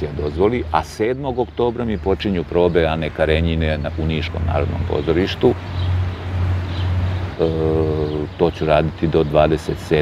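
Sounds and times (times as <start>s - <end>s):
man's drawn-out hesitation sound: 7.3s - 10.0s.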